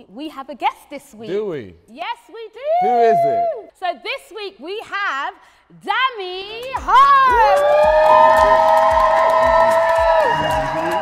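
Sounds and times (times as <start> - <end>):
music with thumping beat: 6.7 - 11.0
people cheering with held shout: 7.2 - 11.0.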